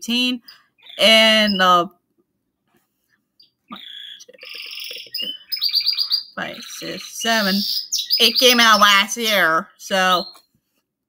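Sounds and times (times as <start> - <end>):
bird chirping and trilling: 0.2 - 1.9, 3.4 - 10.5.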